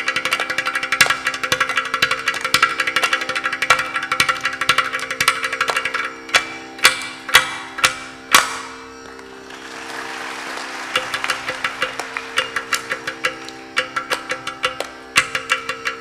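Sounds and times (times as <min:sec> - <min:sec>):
tambura drone: 0:00.0 - 0:16.0.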